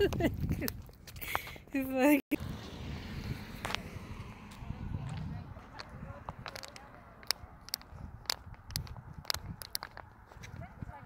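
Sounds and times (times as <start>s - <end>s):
wind buffeting microphone: 0.0s - 11.0s
sharp clicks: 5.8s - 10.1s.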